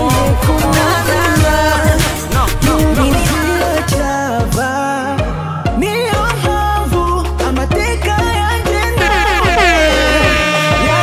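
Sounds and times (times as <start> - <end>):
song with beat: 0.0 - 11.0
air horn sound effect: 9.0 - 11.0.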